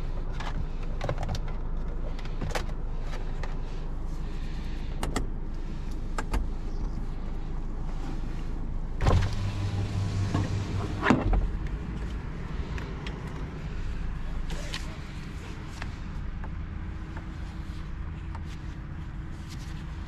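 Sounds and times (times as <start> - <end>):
car cabin low hum: 0.0 - 20.0
motor stopping thump: 9.0 - 11.7.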